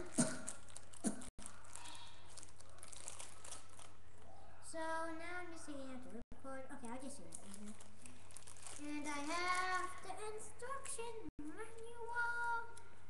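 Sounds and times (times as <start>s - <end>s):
packaging crinkling: 0.0s - 4.0s, 7.2s - 10.1s.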